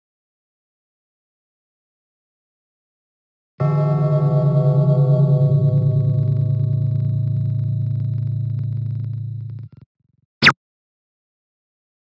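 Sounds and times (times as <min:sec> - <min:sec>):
low ringing tone: 0:03.6 - 0:09.8.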